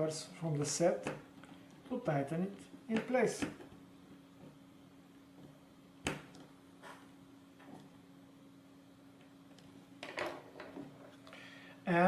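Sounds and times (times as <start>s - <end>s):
faint steady hum: 0.0s - 12.0s
screwdriver put down on table: 10.0s - 10.8s.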